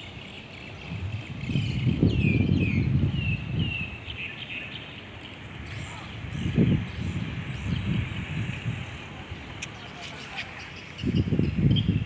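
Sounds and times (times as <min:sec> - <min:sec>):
birds chirping: 0:00.0 - 0:12.0
low rumble of wind or traffic: 0:00.0 - 0:12.0.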